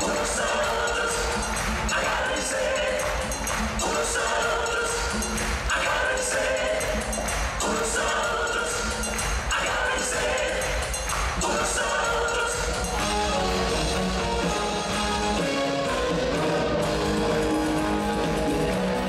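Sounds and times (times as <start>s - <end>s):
live band playing latin pop: 0.0s - 19.0s.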